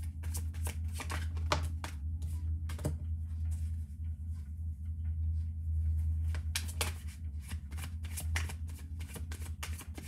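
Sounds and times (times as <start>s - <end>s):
cards being shuffled: 0.0s - 2.0s, 6.3s - 10.0s
steady low hum: 0.0s - 10.0s.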